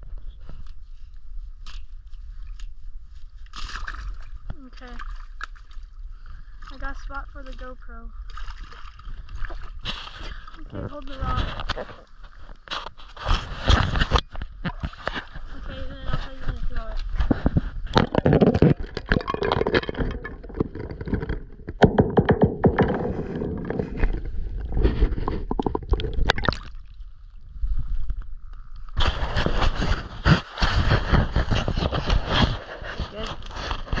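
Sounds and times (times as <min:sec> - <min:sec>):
water sloshing and gurgling: 0:00.0 - 0:34.0
camera knocking and scraping: 0:11.0 - 0:26.5, 0:29.0 - 0:34.0.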